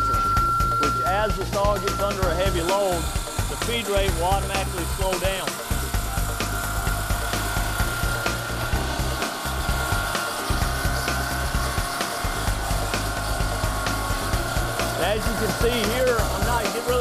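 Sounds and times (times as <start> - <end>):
background music with bass line: 0.0 - 17.0
saw blade cutting stone underwater: 1.3 - 17.0.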